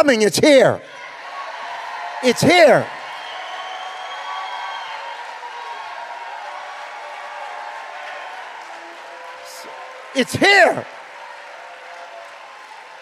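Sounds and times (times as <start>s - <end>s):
crowd cheering and applauding: 0.8s - 13.0s.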